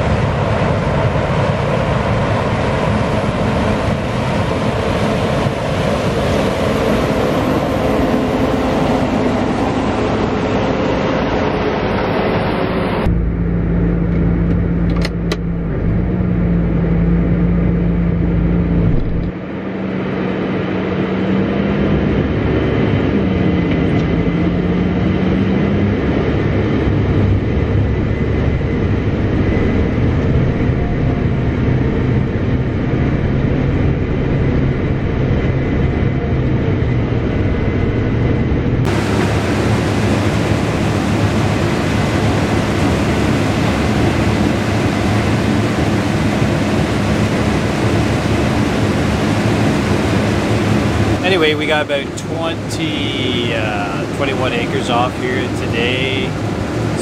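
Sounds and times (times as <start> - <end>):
farm machinery engines running: 0.0 - 57.0.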